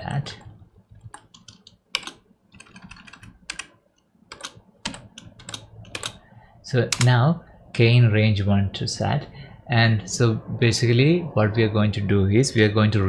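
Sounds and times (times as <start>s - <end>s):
computer keyboard typing: 0.3s - 6.2s, 6.9s - 7.1s.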